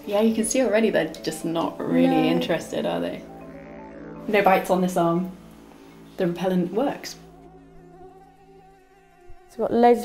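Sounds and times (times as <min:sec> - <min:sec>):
mosquitoes buzzing: 0:00.0 - 0:10.0.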